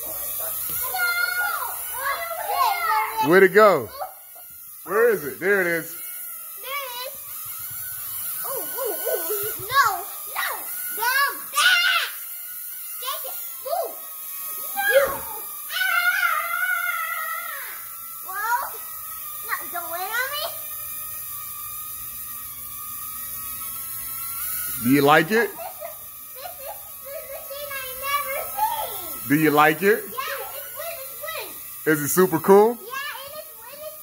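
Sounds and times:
children squealing and whooping: 0:00.0 - 0:04.5, 0:08.0 - 0:20.8, 0:25.4 - 0:29.2, 0:30.0 - 0:31.7
toy propeller humming: 0:00.0 - 0:34.0.

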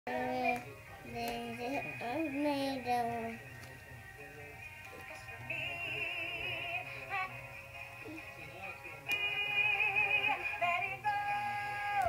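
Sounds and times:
toy doll singing through speaker: 0:00.1 - 0:03.7, 0:09.0 - 0:12.0.

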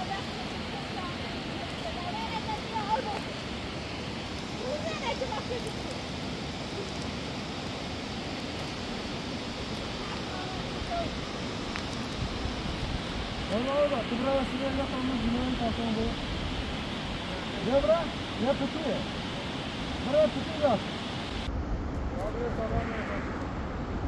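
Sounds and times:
people talking: 0:00.0 - 0:03.4, 0:04.6 - 0:06.0, 0:10.0 - 0:11.2, 0:13.5 - 0:16.2, 0:22.2 - 0:23.3
mountain stream over rocks: 0:00.0 - 0:21.5.

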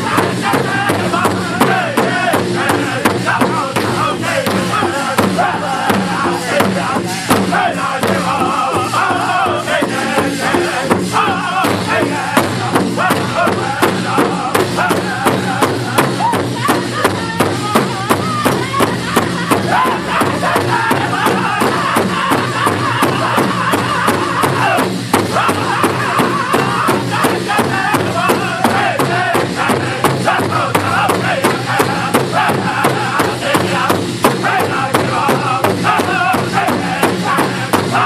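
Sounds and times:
group singing high-pitched: 0:00.0 - 0:38.0
large drum steady beat: 0:00.0 - 0:38.0.

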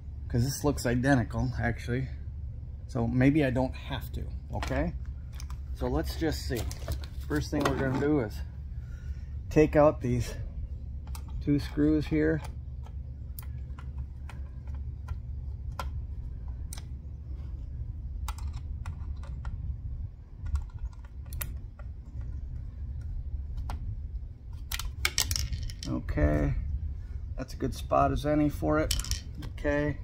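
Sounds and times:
low steady rumble: 0:00.0 - 0:30.0.

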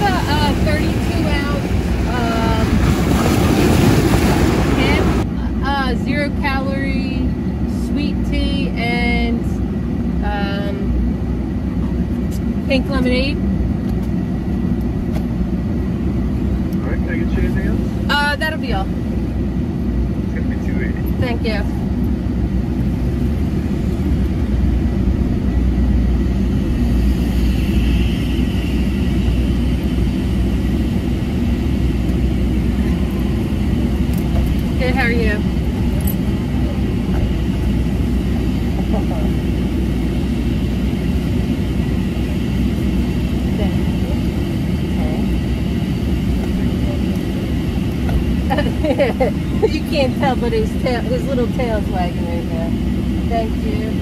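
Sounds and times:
vehicle idling rumble: 0:00.0 - 0:54.0.

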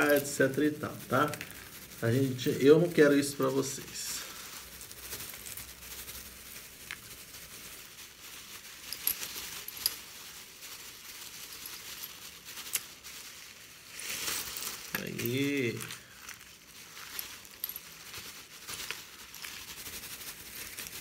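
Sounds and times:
glass shards rattling: 0:00.0 - 0:02.5, 0:08.5 - 0:19.7
plastic bag crinkling: 0:00.0 - 0:21.0.

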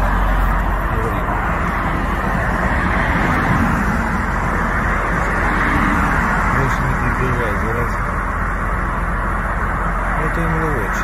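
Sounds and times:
steady low rushing noise: 0:00.0 - 0:11.0.

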